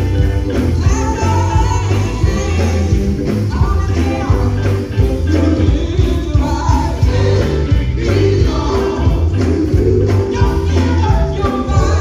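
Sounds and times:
band with heavy bass and drums: 0.0 - 12.0
woman singing into microphone: 0.6 - 9.0, 9.8 - 12.0.

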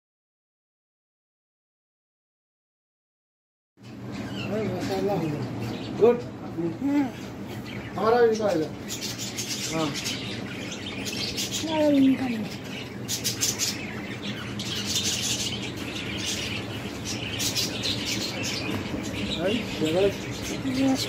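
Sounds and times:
birds chirping: 3.8 - 21.0.

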